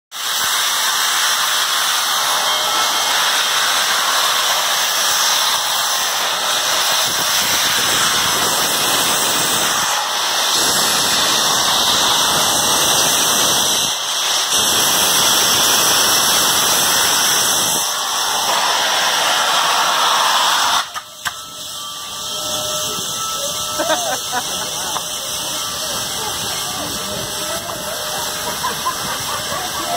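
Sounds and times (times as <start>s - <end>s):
steam locomotive hissing steam: 0.1s - 29.9s.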